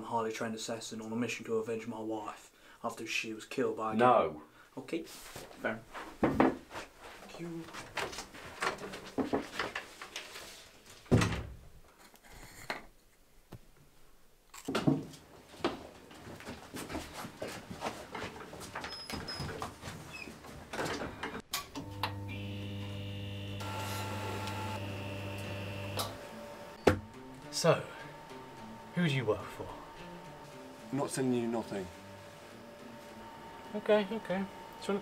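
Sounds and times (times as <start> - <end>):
high steady tones: 23.6 - 35.0.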